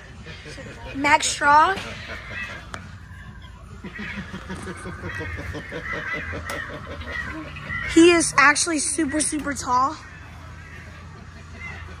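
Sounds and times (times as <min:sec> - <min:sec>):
laughter: 0:01.8 - 0:02.9, 0:03.8 - 0:07.7.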